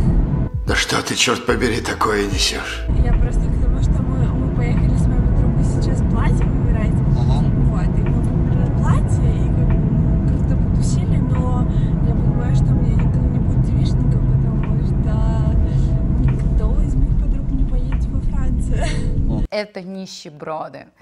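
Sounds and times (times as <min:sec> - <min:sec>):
car road and engine rumble: 0:00.0 - 0:00.5, 0:02.9 - 0:19.5
woman talking: 0:02.9 - 0:21.0.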